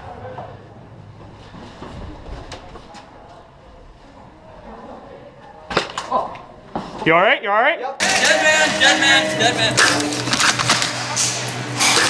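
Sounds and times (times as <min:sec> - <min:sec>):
rustling movement noise: 0:00.9 - 0:04.7.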